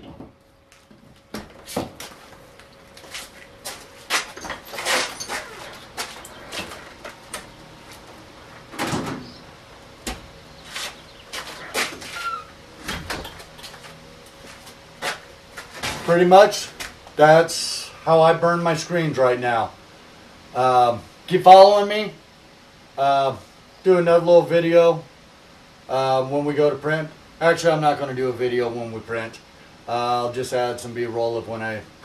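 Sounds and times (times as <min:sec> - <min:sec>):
desk fan humming: 0:00.0 - 0:23.0
short squeak: 0:11.5 - 0:12.6.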